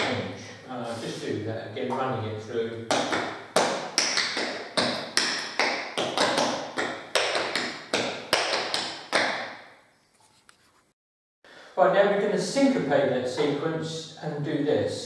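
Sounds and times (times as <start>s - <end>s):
tap shoes on tiled floor: 2.9s - 9.5s.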